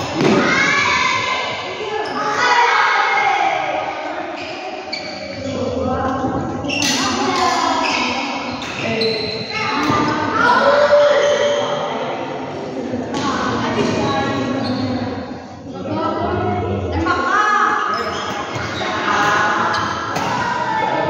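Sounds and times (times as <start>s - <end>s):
voices echoing in a hall: 0.0s - 21.0s.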